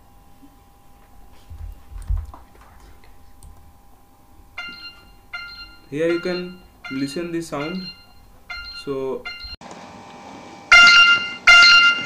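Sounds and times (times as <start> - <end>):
phone alarm ringing high tones: 4.6 - 9.6, 10.7 - 12.0
person speaking: 5.9 - 8.0.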